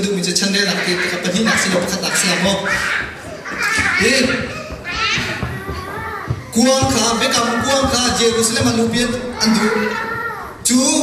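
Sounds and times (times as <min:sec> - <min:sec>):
man preaching into a microphone: 0:00.0 - 0:02.8, 0:04.0 - 0:04.7, 0:06.5 - 0:11.0.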